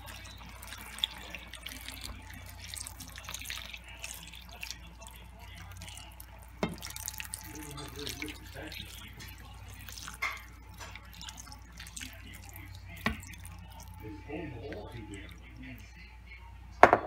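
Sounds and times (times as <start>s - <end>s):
broth splashing into a pan: 0.0s - 15.8s.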